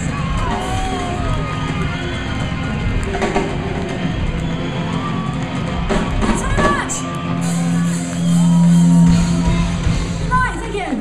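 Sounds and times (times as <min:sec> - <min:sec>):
punk rock band playing live: 0:00.0 - 0:10.7
audience shouting and cheering: 0:00.0 - 0:11.0.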